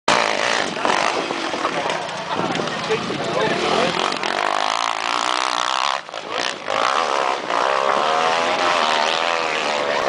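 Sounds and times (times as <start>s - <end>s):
crowd voices: 0.1s - 10.0s
dirt bike engine running: 0.1s - 10.0s.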